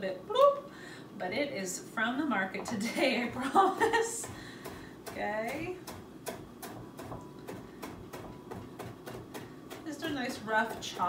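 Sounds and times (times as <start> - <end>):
knife chopping on wooden board: 4.2 - 11.0.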